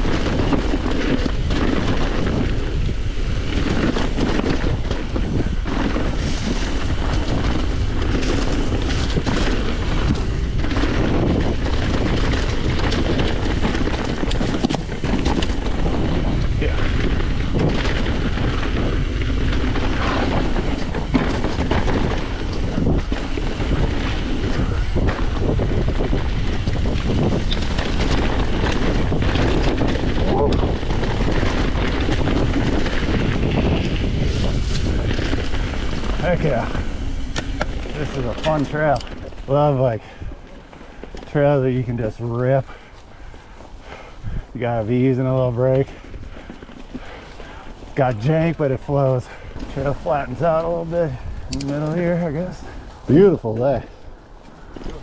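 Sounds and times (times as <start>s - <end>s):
bike clattering over bumps: 0.0s - 53.0s
tyres rolling through dirt and leaves: 0.0s - 55.0s
wind rushing on microphone: 0.0s - 55.0s.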